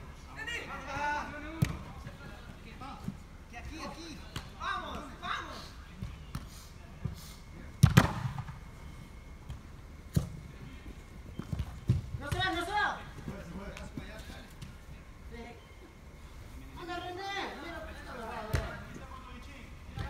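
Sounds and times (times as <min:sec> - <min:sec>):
soccer ball kicks: 0:07.8 - 0:08.6, 0:09.4 - 0:10.5, 0:11.3 - 0:14.8, 0:18.4 - 0:18.8.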